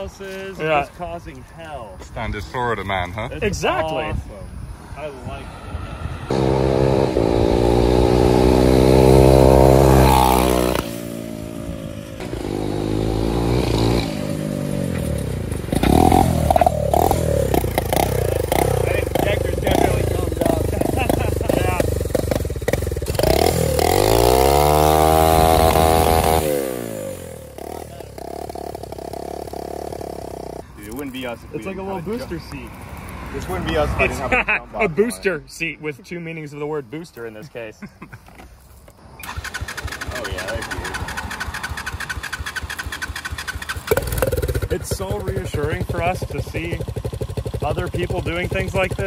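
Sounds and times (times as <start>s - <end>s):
small engine revving: 5.7s - 30.6s, 39.2s - 49.0s.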